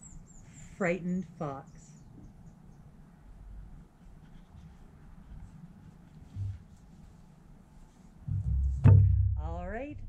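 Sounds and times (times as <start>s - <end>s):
low rumble: 8.3s - 10.0s.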